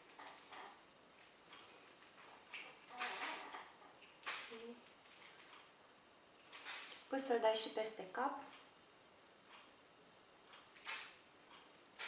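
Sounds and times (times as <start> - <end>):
hairspray hissing bursts: 3.0 - 3.4, 4.2 - 4.5, 6.6 - 7.0, 10.8 - 11.2.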